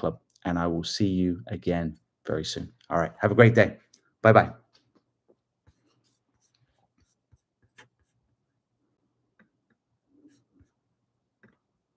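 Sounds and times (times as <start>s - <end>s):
faint clicks and taps: 9.3s - 11.8s.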